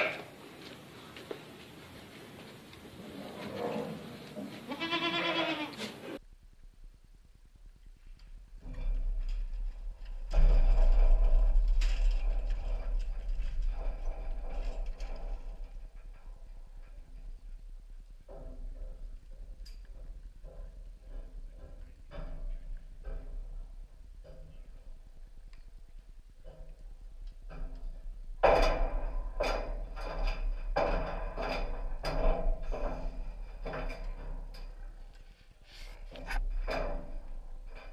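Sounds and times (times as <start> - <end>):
goat bleating: 4.6 - 6.0
low rumble: 6.2 - 37.9
knocks and clatter: 8.2 - 37.9.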